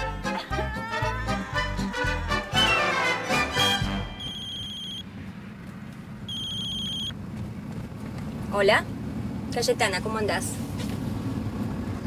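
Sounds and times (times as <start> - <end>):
mobile phone ringing: 6.3 - 7.1.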